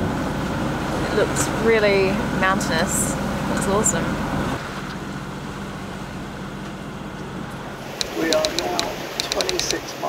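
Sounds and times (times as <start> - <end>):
wind: 0.0 - 10.0
sea noise: 7.7 - 10.0.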